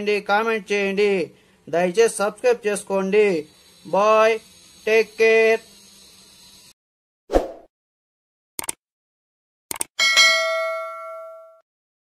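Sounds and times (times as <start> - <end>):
quick double clicks: 8.6 - 8.8, 9.7 - 9.9
bell-like ding: 10.0 - 11.6.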